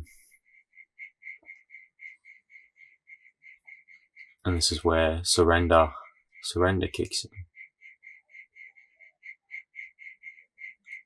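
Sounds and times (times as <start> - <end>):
animal chirping: 7.5 - 11.0.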